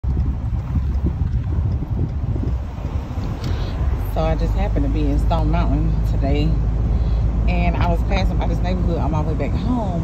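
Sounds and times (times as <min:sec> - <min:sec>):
road noise: 0:00.0 - 0:10.0
wind buffeting microphone: 0:00.0 - 0:10.0.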